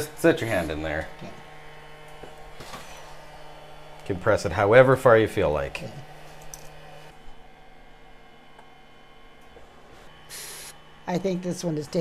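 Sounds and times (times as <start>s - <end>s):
faint steady hum: 0.0s - 12.0s
short hiss: 10.3s - 10.8s.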